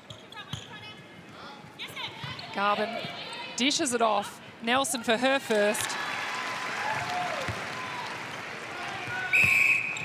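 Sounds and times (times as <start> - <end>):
crowd cheering and applauding: 6.0 - 9.4
referee whistle blast: 9.2 - 10.0.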